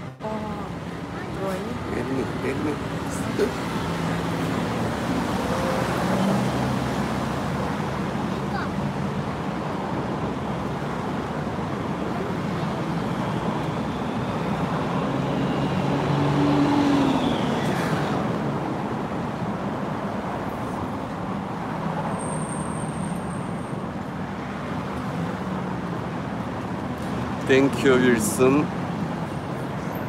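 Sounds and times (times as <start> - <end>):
road traffic rumble: 0.0 - 30.0.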